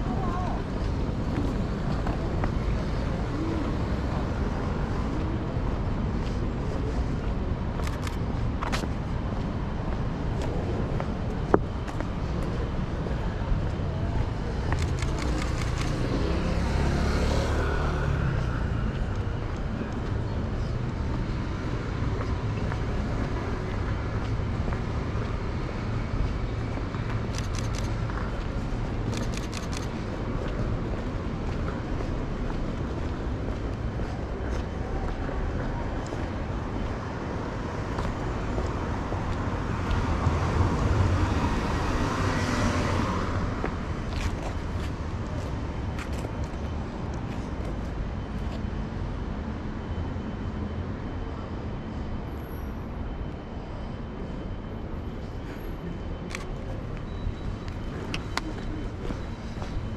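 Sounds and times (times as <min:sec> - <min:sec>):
road traffic rumble: 0:00.0 - 0:59.9.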